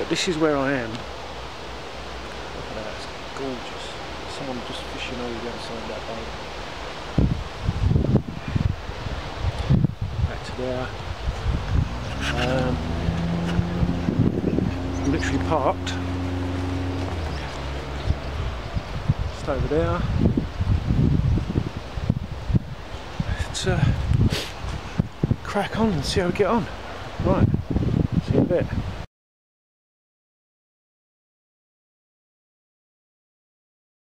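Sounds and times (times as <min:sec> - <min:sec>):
wind buffeting microphone: 0:04.3 - 0:29.1.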